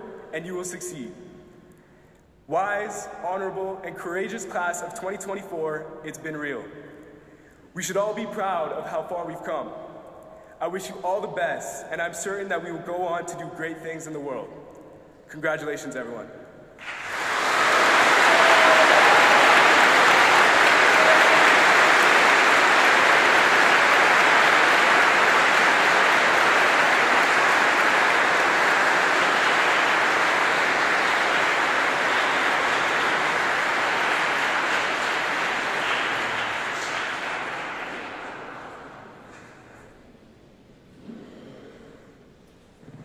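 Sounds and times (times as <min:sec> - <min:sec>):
large crowd applauding: 0:16.8 - 0:39.4.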